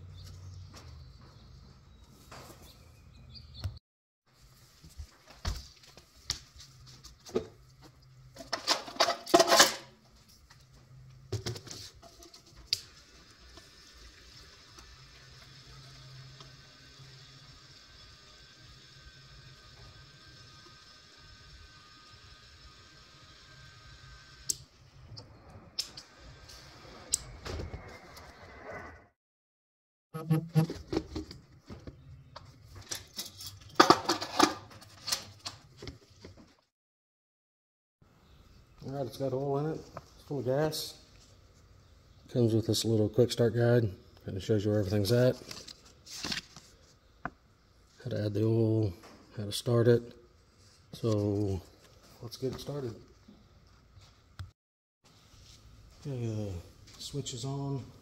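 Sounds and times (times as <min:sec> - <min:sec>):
fuel flowing through hose: 0:12.7 - 0:27.3.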